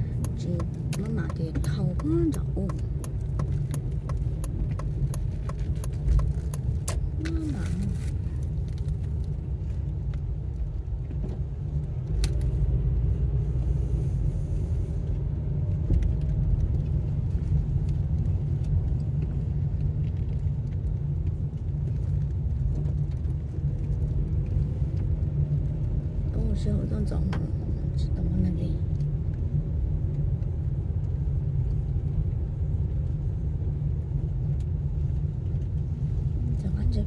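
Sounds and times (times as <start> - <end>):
car engine and road rumble: 0.0 - 37.0.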